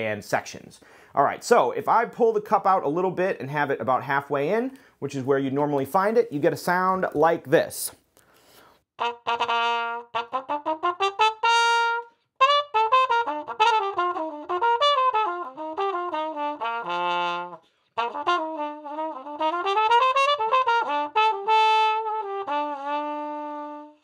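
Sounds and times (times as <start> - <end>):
muted trumpet melody: 9.0 - 24.0.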